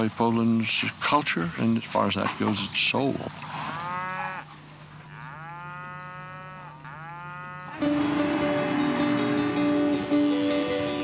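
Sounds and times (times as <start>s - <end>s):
cattle mooing: 3.6s - 4.5s, 5.1s - 9.8s
music: 7.8s - 11.0s.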